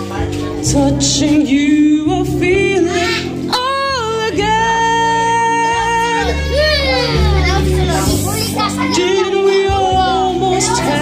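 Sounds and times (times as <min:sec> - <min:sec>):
man singing a slow ballad: 0:00.0 - 0:07.0, 0:08.9 - 0:11.0
backing track: 0:00.0 - 0:11.0.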